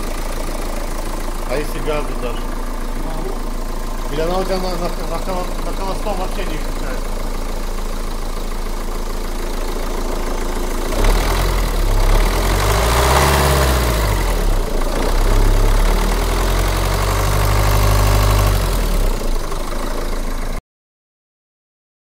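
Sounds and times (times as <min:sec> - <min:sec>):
diesel engine idling and revving: 0:00.0 - 0:20.6.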